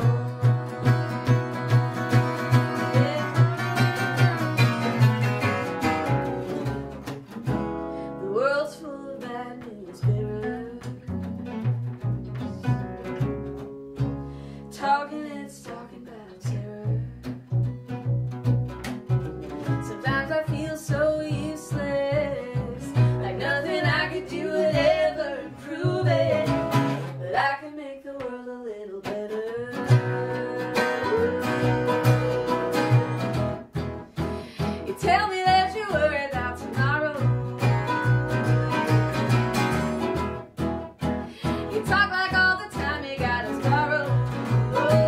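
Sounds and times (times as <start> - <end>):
woman singing: 0.0 - 6.2, 8.2 - 11.4, 14.7 - 17.3, 19.6 - 33.6, 34.6 - 40.0, 41.4 - 45.0
plucked double bass: 0.0 - 27.6, 28.2 - 45.0
acoustic guitar: 0.0 - 45.0
octave mandolin: 0.0 - 45.0.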